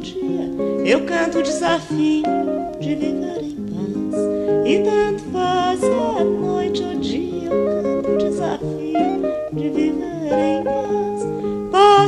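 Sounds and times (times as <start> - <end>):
plucked guitar over held notes: 0.0 - 12.0.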